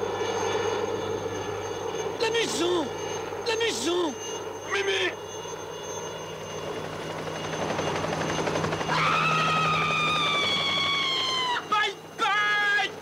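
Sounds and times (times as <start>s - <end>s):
person screaming: 8.9s - 12.9s.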